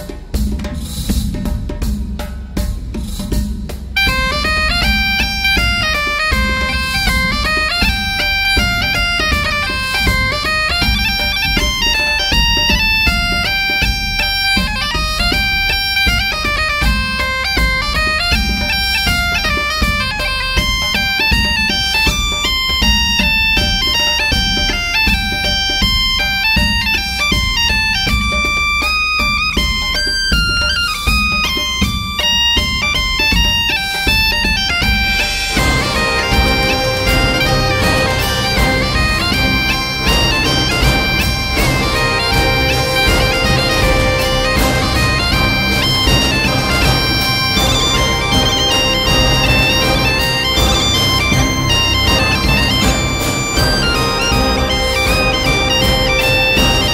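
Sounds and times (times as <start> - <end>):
bagpipe melody over drone: 4.0 - 56.9.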